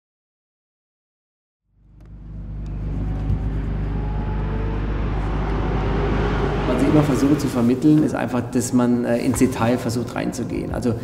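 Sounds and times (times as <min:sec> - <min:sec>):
sports car engine running: 0:01.7 - 0:07.9.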